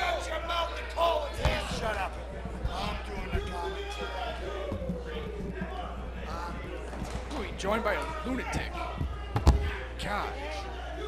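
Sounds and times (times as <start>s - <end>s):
steady low hum: 0.0s - 11.0s
dull thumps: 1.4s - 9.8s.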